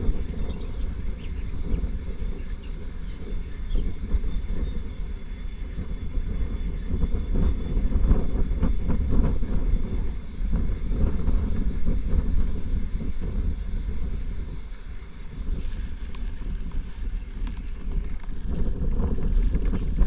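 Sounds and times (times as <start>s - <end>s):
bicycle tyres rolling: 0.0s - 20.0s
wind on microphone: 0.0s - 20.0s.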